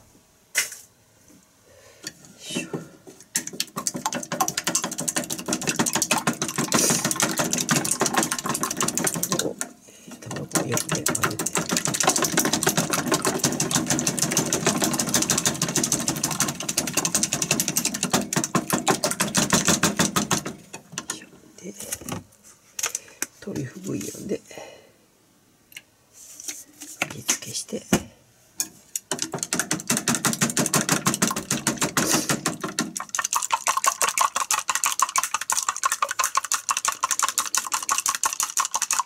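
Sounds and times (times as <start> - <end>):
chopsticks beating eggs in a cup: 3.4 - 20.5, 29.2 - 39.0.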